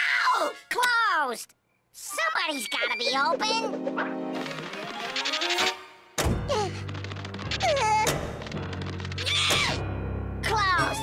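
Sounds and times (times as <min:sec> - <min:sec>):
sudden thunk: 0:06.2 - 0:06.5.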